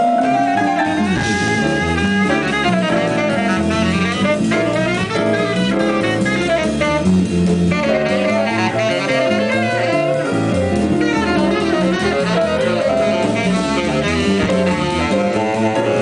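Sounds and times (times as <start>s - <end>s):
live rock band playing: 0.0s - 16.0s
saxophone lead: 0.0s - 16.0s.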